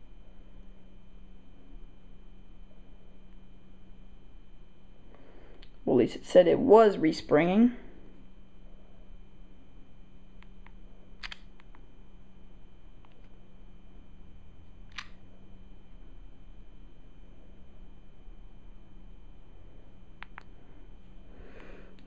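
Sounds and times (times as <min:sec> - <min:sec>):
quiet electrical hum: 0:00.0 - 0:22.0.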